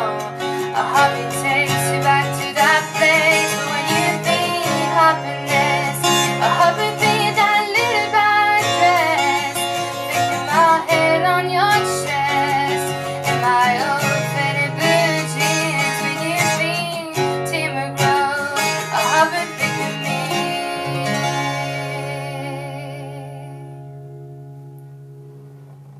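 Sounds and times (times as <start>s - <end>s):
woman singing wordlessly: 0.0s - 23.8s
acoustic guitar strumming: 0.0s - 25.9s.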